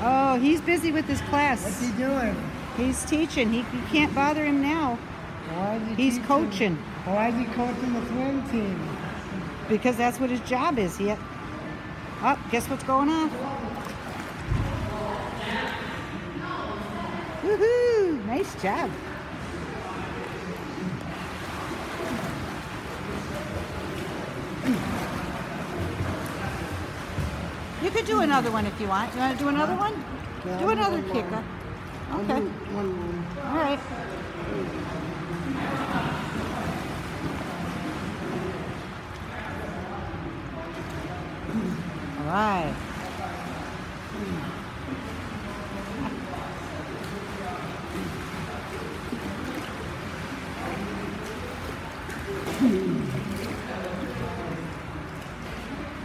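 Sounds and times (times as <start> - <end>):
faint voices: 0.0 - 56.0
steady noisy background: 0.0 - 56.0
water splashing from swimmer kicking: 13.3 - 16.1, 18.9 - 30.5, 34.1 - 39.9, 40.6 - 56.0.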